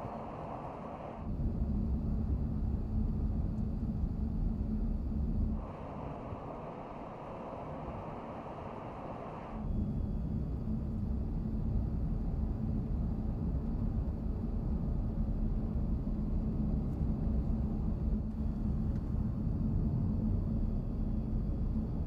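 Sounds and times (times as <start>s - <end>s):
low steady hum: 0.0s - 22.0s
road and tyre rumble in car: 7.3s - 22.0s.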